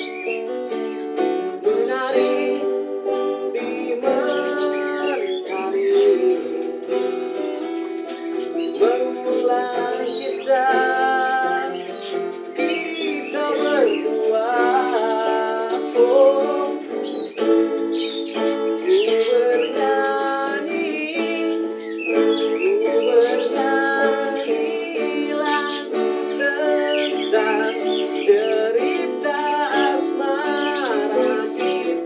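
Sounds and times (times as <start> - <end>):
acoustic guitars playing: 0.0 - 32.0
man singing: 1.5 - 7.0, 8.5 - 32.0.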